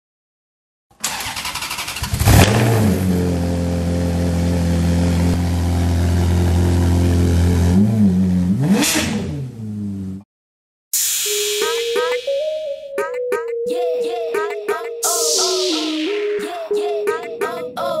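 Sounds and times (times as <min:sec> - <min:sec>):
engine cranking and idling: 0:01.0 - 0:03.0
engine revving: 0:01.1 - 0:10.2.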